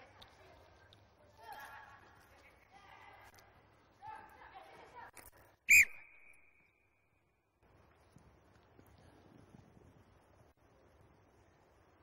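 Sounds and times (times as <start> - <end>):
whistle blast: 5.7 - 6.9.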